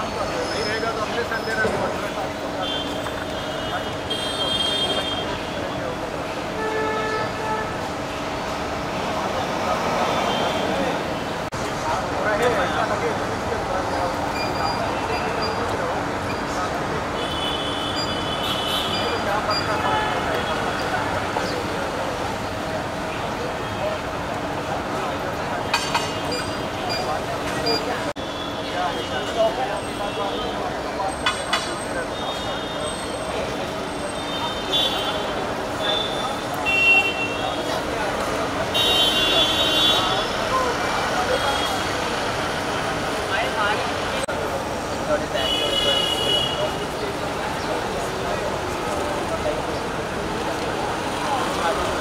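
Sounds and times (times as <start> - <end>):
road traffic: 0.0 - 52.0
vehicle horn honks: 6.6 - 7.8, 17.2 - 20.7, 38.7 - 40.3, 45.4 - 46.8.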